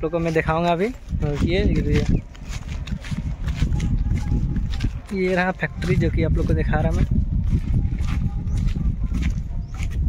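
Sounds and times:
footsteps on a road: 0.0 - 10.0
wind on microphone: 0.0 - 10.0.

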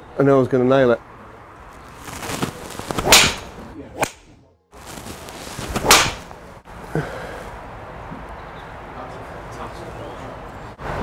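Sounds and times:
golf club swing swish: 2.5 - 4.2, 5.2 - 6.4.

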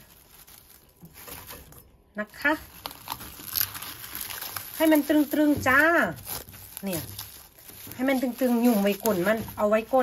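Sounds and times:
cling film crinkling: 0.0 - 10.0.

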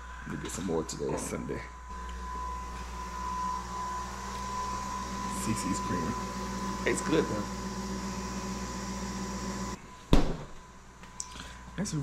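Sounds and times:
kitchen appliance humming: 1.9 - 9.8.

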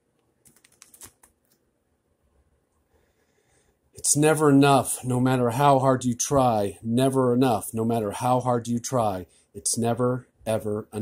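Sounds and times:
small clicks and paper ticks: 0.2 - 1.6
sketchbook page turning: 0.5 - 1.6.

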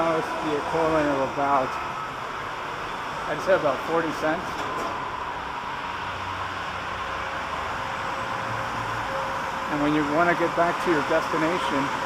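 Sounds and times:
subway station hum and hiss: 0.0 - 12.0.

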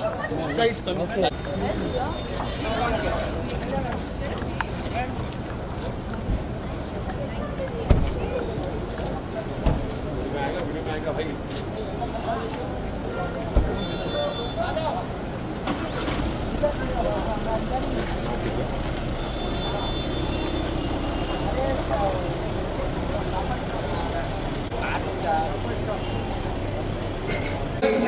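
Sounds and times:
people's voices: 0.0 - 28.0.

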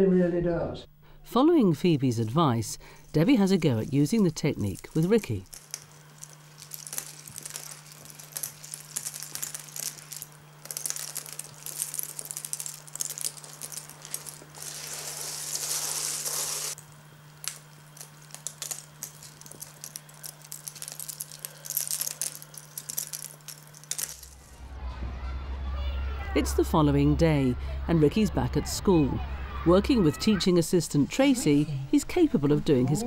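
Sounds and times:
steady low hum: 0.0 - 33.0
small objects clicking and rattling: 3.0 - 24.6
rustling: 3.3 - 24.6.

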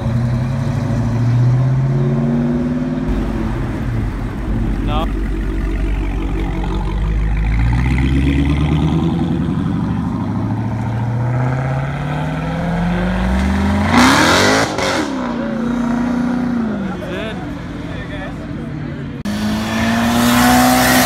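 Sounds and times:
car engine accelerating: 0.0 - 17.3.

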